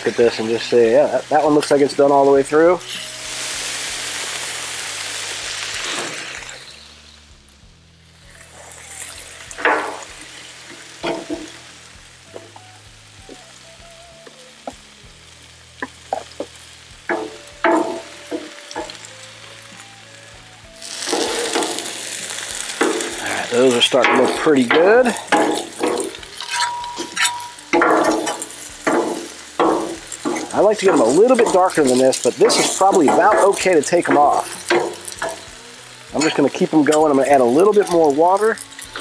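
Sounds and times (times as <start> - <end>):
food sizzling on a griddle: 0.0 - 39.0
metal spatulas scraping and clinking: 23.6 - 35.4.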